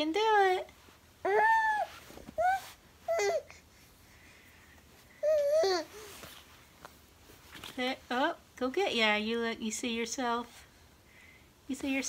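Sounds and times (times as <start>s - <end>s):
baby babbling: 1.2s - 3.6s, 5.2s - 6.1s.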